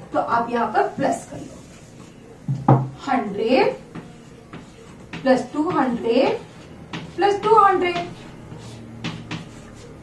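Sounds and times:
chalk writing on chalkboard: 1.0s - 10.0s
chalk tapping on board: 3.6s - 10.0s.

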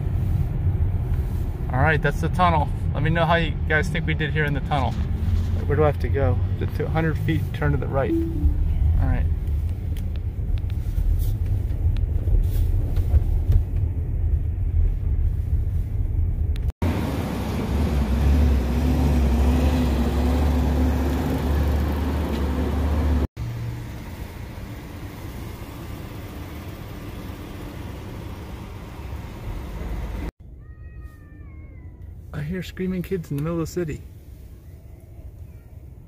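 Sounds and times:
road and traffic rumble in car: 0.0s - 30.6s, 31.4s - 36.0s.

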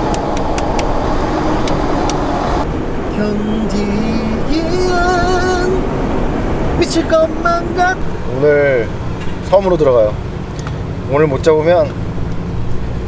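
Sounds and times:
road and engine noise in a van: 0.0s - 13.0s.

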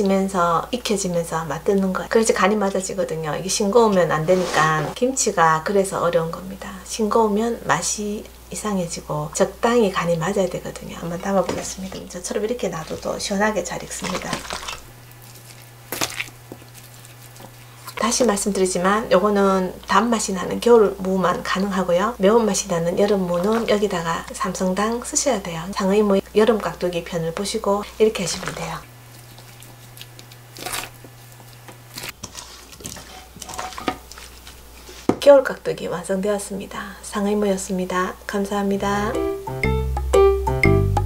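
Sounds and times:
food cubes squishing: 12.4s - 18.6s, 22.9s - 25.1s, 27.8s - 35.1s.

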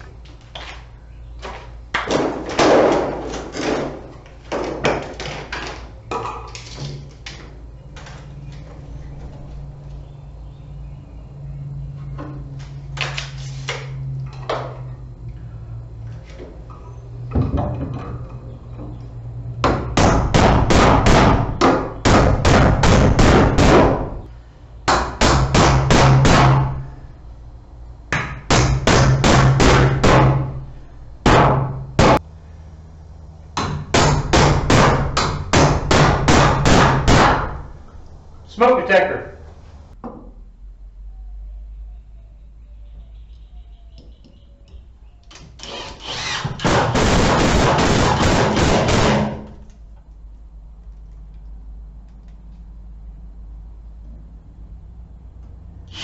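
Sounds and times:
hammer nailing into wood: 2.0s - 6.4s, 19.6s - 24.1s, 24.9s - 26.8s, 28.1s - 30.6s, 31.2s - 32.2s, 33.6s - 37.6s, 46.4s - 49.6s.

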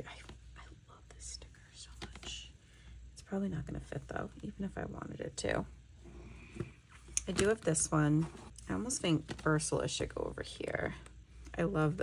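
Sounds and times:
person whispering: 0.0s - 2.5s
low room hum: 0.0s - 12.0s.

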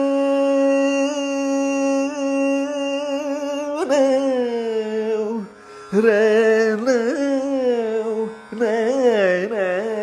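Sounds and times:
man singing long wavering notes: 0.0s - 10.0s.

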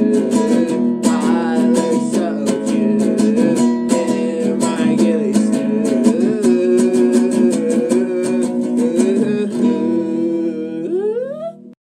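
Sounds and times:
acoustic guitar chord ringing: 0.0s - 10.9s.

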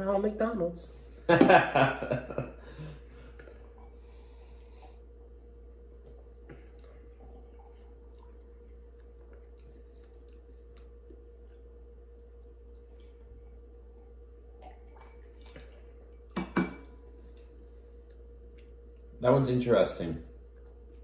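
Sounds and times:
faint room tone hum: 0.0s - 21.0s.

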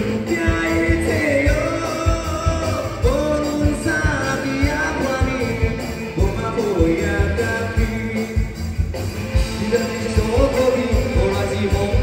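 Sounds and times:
live band playing pop-rock: 0.0s - 12.0s
man singing: 0.0s - 12.0s.

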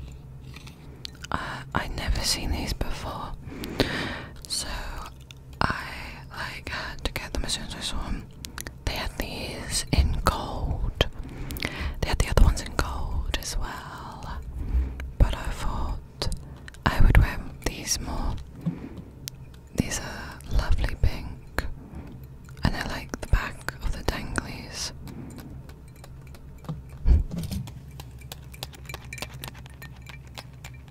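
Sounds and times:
soft close whispering: 1.2s - 19.1s, 19.7s - 25.7s
wet mouth clicks: 24.9s - 30.9s.

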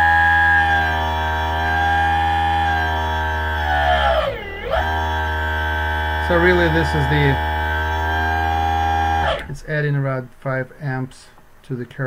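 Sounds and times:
electric motor whining: 0.0s - 9.6s.

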